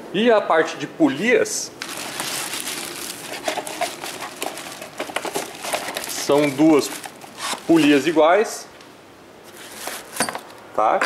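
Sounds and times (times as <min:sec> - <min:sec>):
cardboard box handled: 0:01.8 - 0:08.2
plastic bag rustling: 0:01.8 - 0:08.7, 0:09.5 - 0:10.2.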